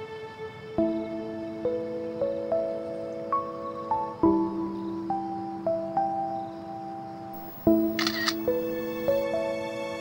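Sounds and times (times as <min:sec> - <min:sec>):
slow gentle background music: 0:00.0 - 0:10.0
camera shutter click: 0:07.4 - 0:09.2.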